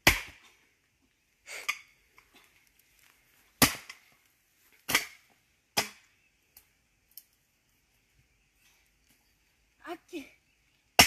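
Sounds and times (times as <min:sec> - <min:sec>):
blade striking log: 0:00.0 - 0:00.4, 0:03.6 - 0:04.0, 0:04.9 - 0:05.2, 0:05.8 - 0:06.1.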